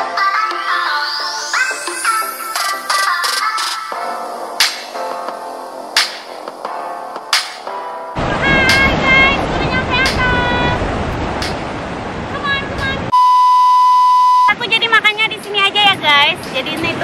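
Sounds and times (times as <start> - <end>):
wind and surf rushing: 1.2 - 13.2
steady electronic bleep: 13.1 - 14.6.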